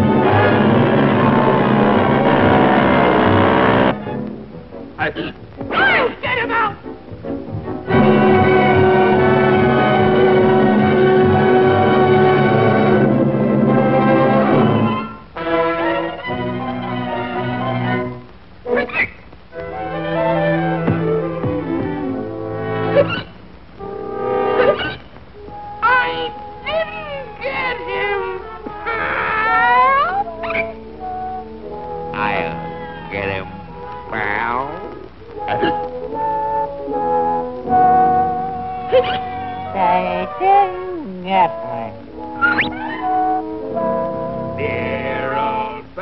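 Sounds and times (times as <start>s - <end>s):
held string chords: 0.0s - 18.8s
orchestral cartoon music: 0.0s - 46.0s
cartoon cat yowling: 25.8s - 30.6s, 42.4s - 43.2s.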